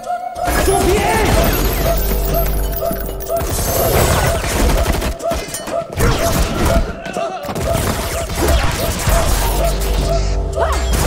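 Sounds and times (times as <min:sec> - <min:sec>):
rapid gunfire: 0:03.4 - 0:05.6, 0:07.5 - 0:09.8.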